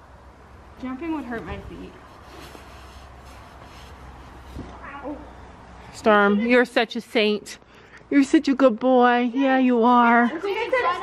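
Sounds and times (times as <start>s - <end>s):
jacket rustling: 2.0s - 4.8s.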